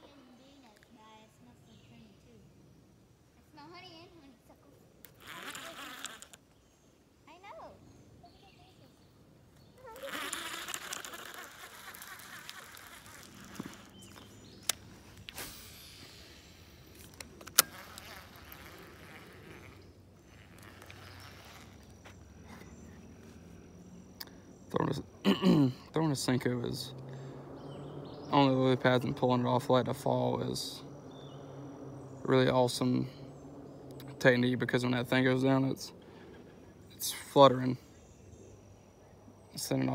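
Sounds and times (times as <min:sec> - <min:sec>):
fishing reel whirring: 0:05.0 - 0:06.4, 0:09.8 - 0:14.5, 0:15.4 - 0:22.8
reel clicks: 0:05.0 - 0:06.4, 0:10.0 - 0:14.8, 0:17.0 - 0:21.9.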